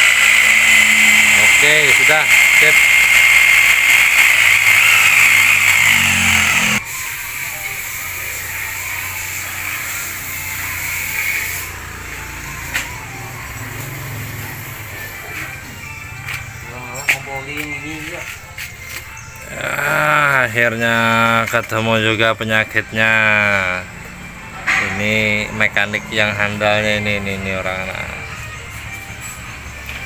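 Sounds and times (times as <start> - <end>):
electric drill whining: 0.0 - 7.8.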